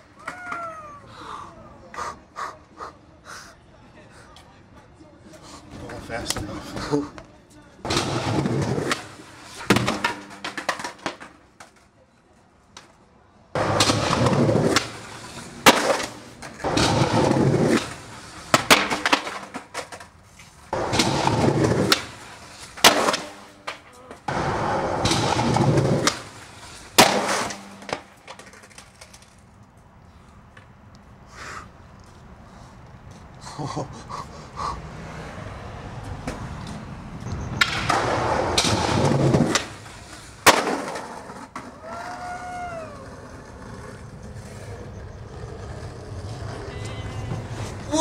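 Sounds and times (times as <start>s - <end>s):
skateboard wheels rolling on concrete: 0.0s - 48.0s
skateboard clacking on ground: 0.1s - 0.8s, 5.3s - 13.0s, 13.6s - 29.9s, 36.1s - 48.0s.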